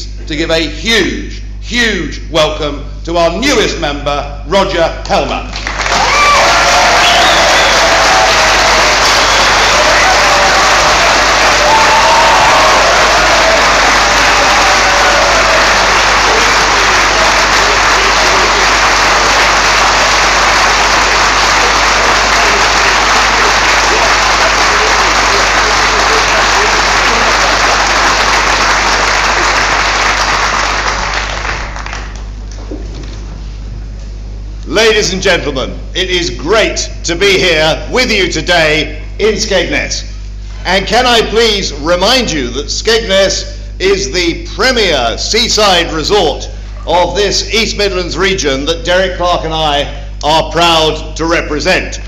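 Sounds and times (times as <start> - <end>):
audience applauding loudly: 5.5 - 32.4.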